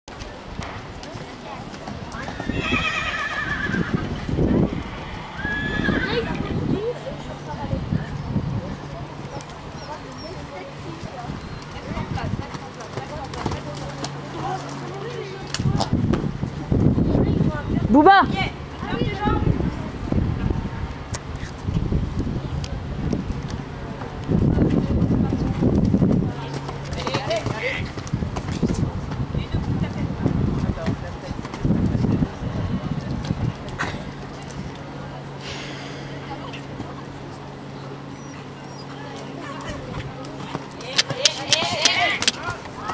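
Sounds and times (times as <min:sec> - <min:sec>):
people's voices: 0:00.1 - 0:42.9
horse whinnying: 0:02.2 - 0:04.2, 0:05.0 - 0:06.5
horse hoofbeats on sand: 0:09.1 - 0:15.0, 0:24.7 - 0:32.2, 0:39.5 - 0:42.9.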